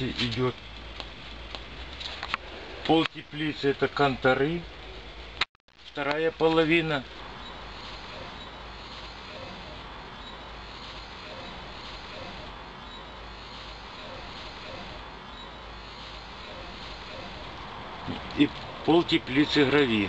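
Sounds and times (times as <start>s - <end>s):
low hiss and rumble: 0.0s - 20.0s.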